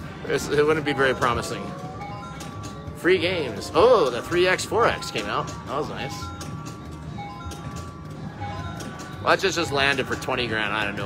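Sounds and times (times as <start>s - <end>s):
slot machine beeping tones: 0.0s - 11.0s.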